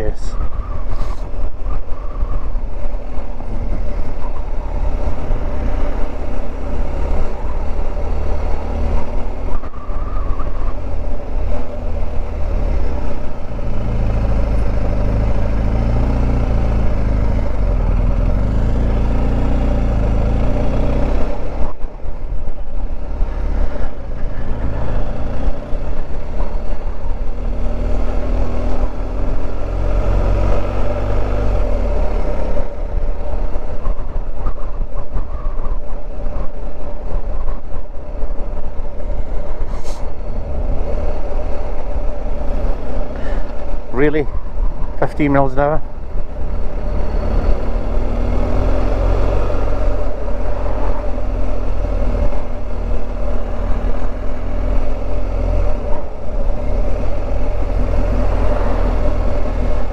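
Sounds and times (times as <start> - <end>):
road noise: 0.0 - 59.9.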